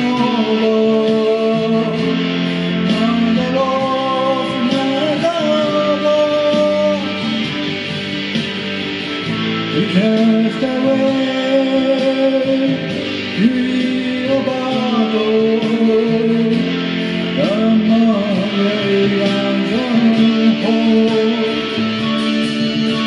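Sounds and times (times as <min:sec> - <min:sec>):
backing guitars: 0:00.0 - 0:23.0
electric guitar rock lead: 0:00.0 - 0:23.0.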